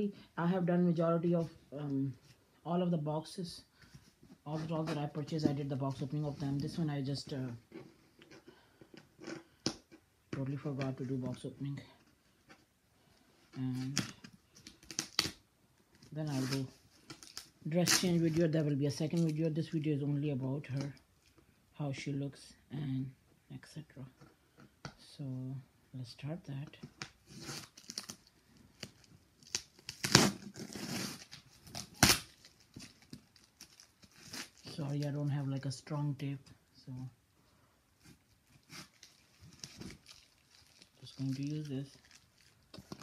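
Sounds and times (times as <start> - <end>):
cardboard tearing: 13.7 - 15.4, 27.2 - 35.0, 38.0 - 43.0.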